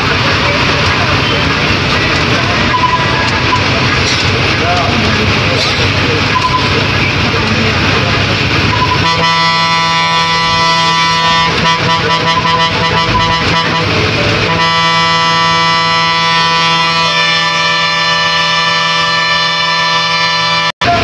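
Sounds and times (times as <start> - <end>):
bus engine: 0.0 - 21.0
road noise: 0.0 - 21.0
bus air horn blast: 8.7 - 21.0.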